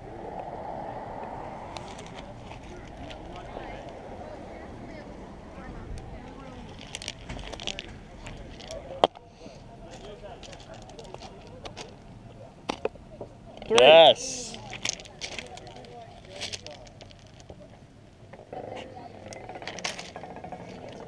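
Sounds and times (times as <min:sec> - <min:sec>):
murmur of distant voices: 0:00.0 - 0:21.0.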